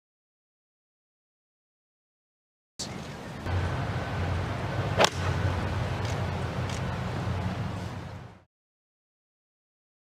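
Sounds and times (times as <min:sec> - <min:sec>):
low hum: 0:02.8 - 0:08.5
golf club striking ball: 0:04.9 - 0:06.9.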